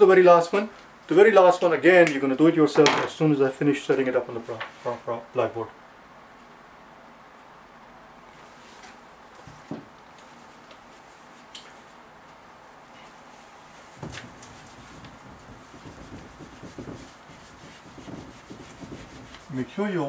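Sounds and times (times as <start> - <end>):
whiteboard eraser scrubbing: 13.0 - 19.8.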